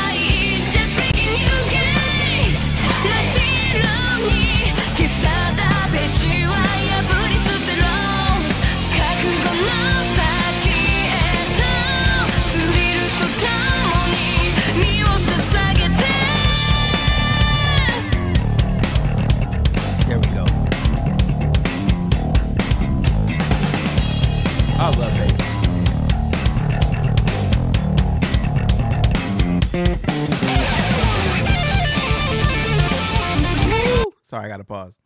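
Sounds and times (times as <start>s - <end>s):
hard rock band playing: 0.0s - 34.1s
lead guitar: 0.0s - 34.1s.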